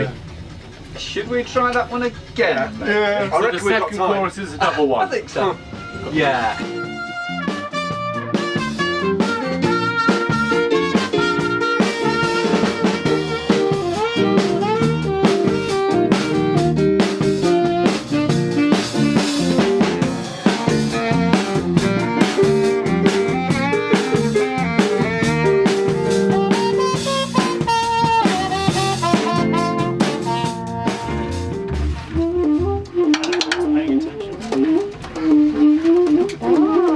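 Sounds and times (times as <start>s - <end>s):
live band playing: 0.0s - 36.9s.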